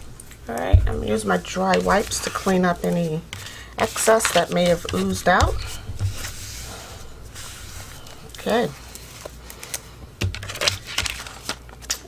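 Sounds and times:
wipe rubbing over paper: 0:01.1 - 0:03.2, 0:03.8 - 0:09.3.

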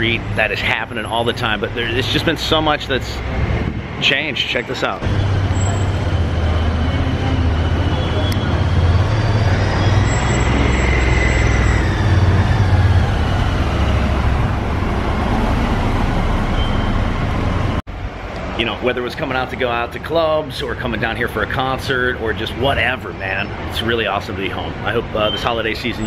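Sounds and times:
cars passing: 0:00.0 - 0:26.0.

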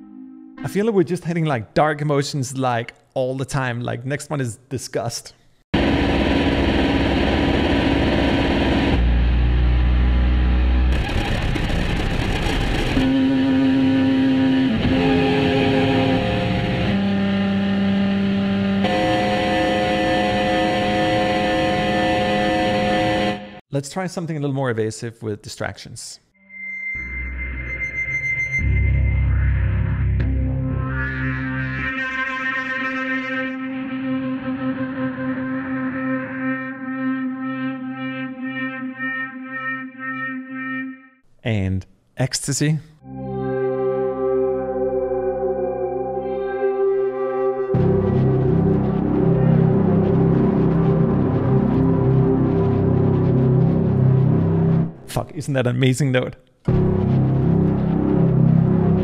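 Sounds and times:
low drone: 0:05.8 - 0:17.8, 0:43.1 - 0:55.0, 0:56.7 - 0:59.0
deep synth notes: 0:05.8 - 0:23.6, 0:27.0 - 0:41.2, 0:43.0 - 0:55.2, 0:56.7 - 0:59.0
thin high guitar pad tone: 0:13.0 - 0:17.1, 0:18.8 - 0:23.6, 0:43.0 - 0:54.4.

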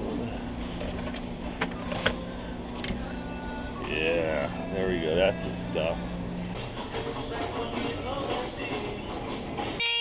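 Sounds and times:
steady low hum: 0:00.0 - 0:09.9.

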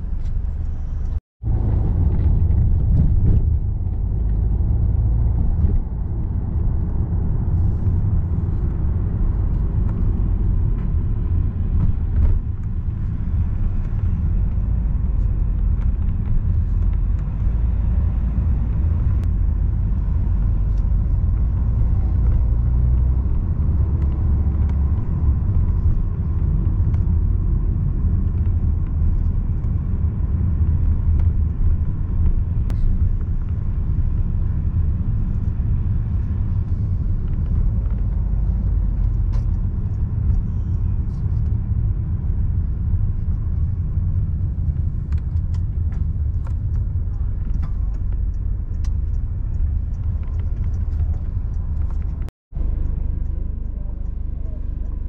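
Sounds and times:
car driving rumble from inside: 0:00.0 - 0:55.0.

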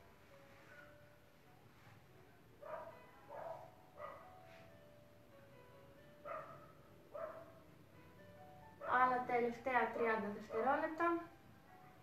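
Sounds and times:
quiet background music: 0:00.0 - 0:12.0
dog barking faintly: 0:02.6 - 0:04.4, 0:09.9 - 0:11.0.

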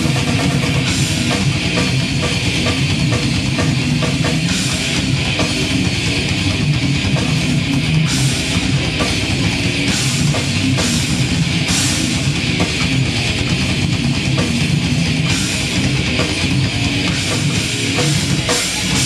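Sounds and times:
distorted electric guitars: 0:00.0 - 0:19.0
pounding drum kit: 0:00.0 - 0:19.0.

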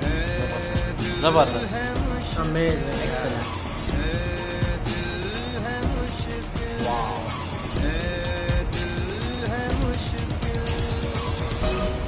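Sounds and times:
backing music: 0:00.0 - 0:12.0
man singing: 0:00.0 - 0:12.0.

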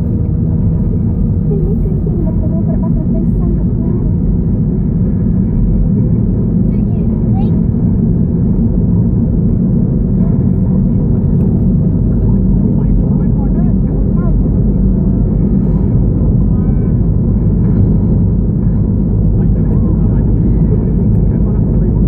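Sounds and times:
road and engine rumble in car: 0:00.0 - 0:22.0.

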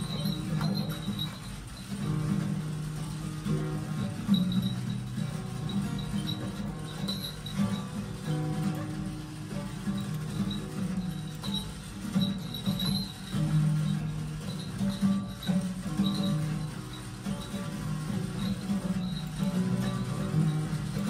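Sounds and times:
music with guitar: 0:00.0 - 0:21.0.

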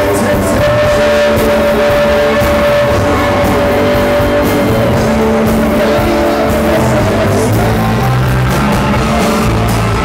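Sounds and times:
country band playing: 0:00.0 - 0:10.0
electric guitar sustained notes: 0:00.0 - 0:10.0.

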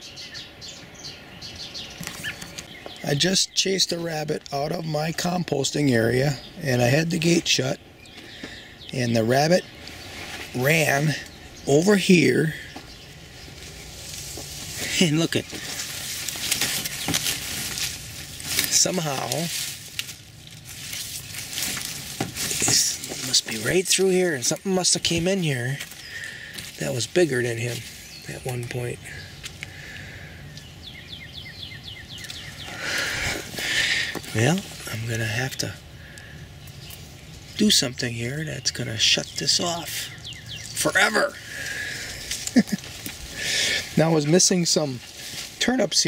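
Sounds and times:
leaves rustling and crinkling: 0:00.1 - 0:46.0.

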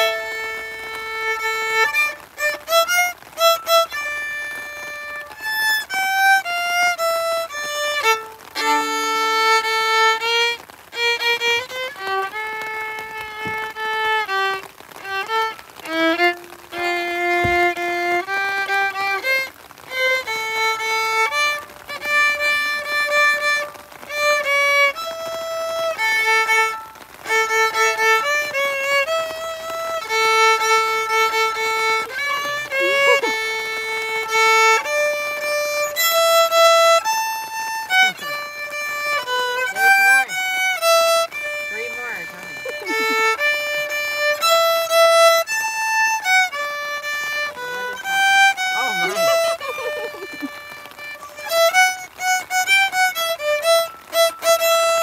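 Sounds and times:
solo violin melody: 0:00.0 - 0:55.0.

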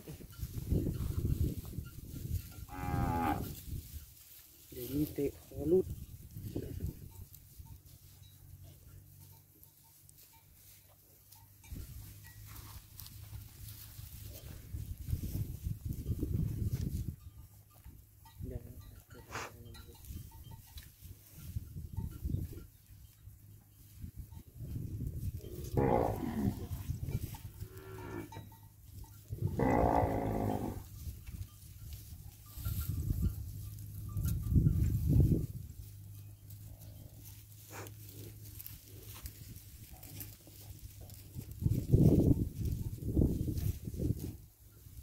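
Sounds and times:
cattle mooing: 0:02.7 - 0:03.6, 0:25.6 - 0:26.8, 0:27.6 - 0:28.4, 0:29.4 - 0:30.8.

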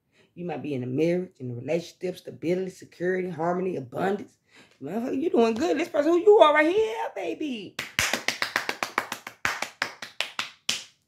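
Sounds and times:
person clapping hands: 0:07.8 - 0:11.0.

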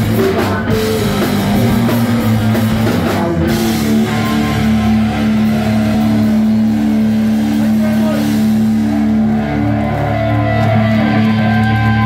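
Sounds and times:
rock band with distorted guitar: 0:00.0 - 0:12.0.

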